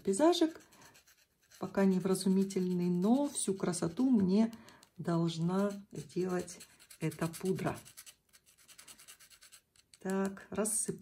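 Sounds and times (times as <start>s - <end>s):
stick scratching in wire sieve: 5.3s - 10.0s.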